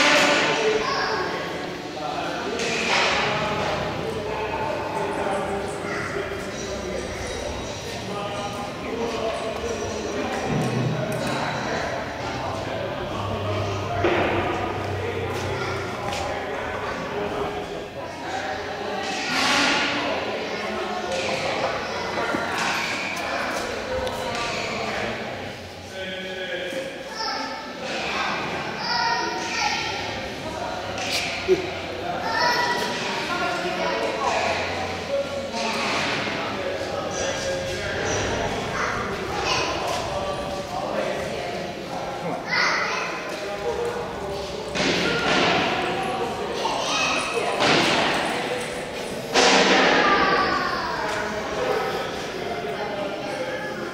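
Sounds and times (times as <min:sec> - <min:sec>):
voices in echoing hall: 0:00.0 - 0:53.9.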